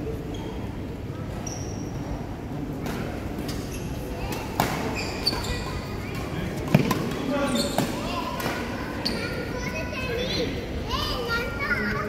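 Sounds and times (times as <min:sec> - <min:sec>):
badminton rackets hitting shuttlecock: 0:04.3 - 0:05.5, 0:06.1 - 0:08.8.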